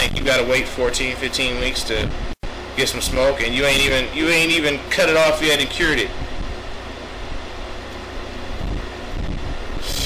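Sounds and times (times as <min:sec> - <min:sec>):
low background hum: 0:00.0 - 0:10.0
man exhaling smoke: 0:09.7 - 0:10.0.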